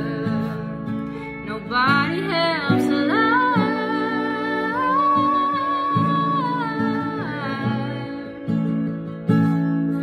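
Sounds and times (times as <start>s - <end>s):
woman singing slow melody: 0.0s - 8.5s
strummed acoustic guitar: 0.0s - 10.0s.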